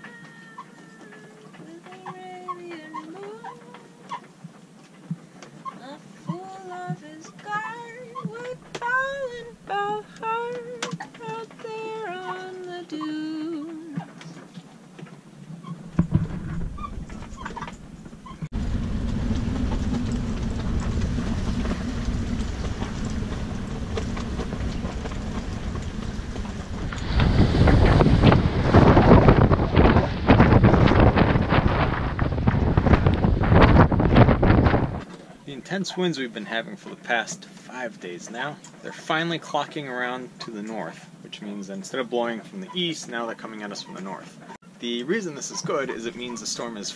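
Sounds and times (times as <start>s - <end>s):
gale wind rushing: 15.8s - 35.1s
wind buffeting microphone: 15.8s - 35.1s.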